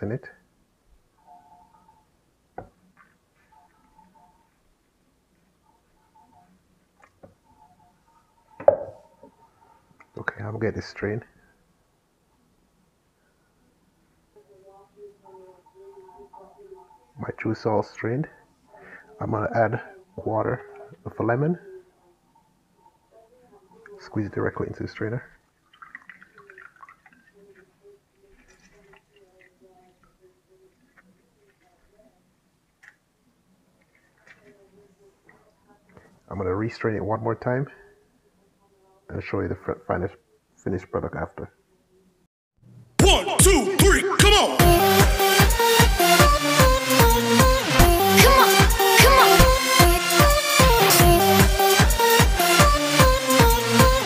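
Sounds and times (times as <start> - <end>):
hard object knocking on worktop: 8.6 - 9.0.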